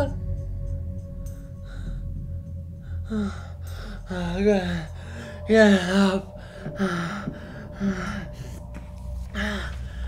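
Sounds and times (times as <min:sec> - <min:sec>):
low steady drone: 0:00.0 - 0:10.0.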